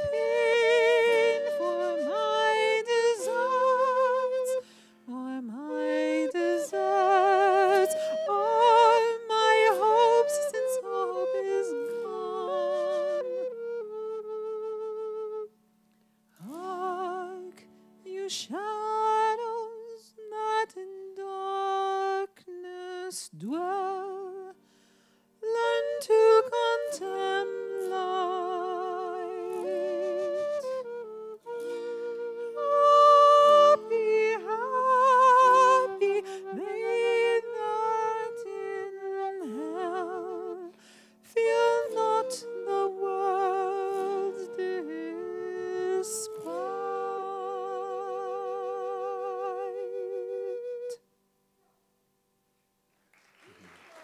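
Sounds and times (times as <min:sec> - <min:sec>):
woman singing with vibrato: 0:00.0 - 0:13.8, 0:16.4 - 0:24.6, 0:25.4 - 0:30.8, 0:32.1 - 0:51.0
wooden end-blown flute: 0:00.0 - 0:15.6, 0:25.4 - 0:51.0.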